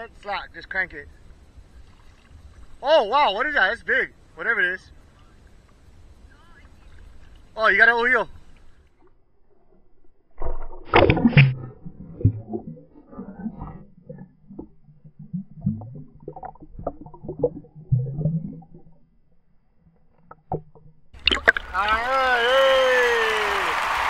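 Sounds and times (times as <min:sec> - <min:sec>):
muffled water sloshing and bubbling: 0:01.1 - 0:02.8, 0:08.4 - 0:22.0.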